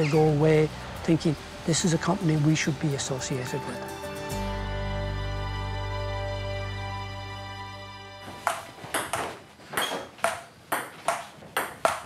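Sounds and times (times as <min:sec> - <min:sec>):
table tennis ball hollow clicks: 0:08.4 - 0:12.0.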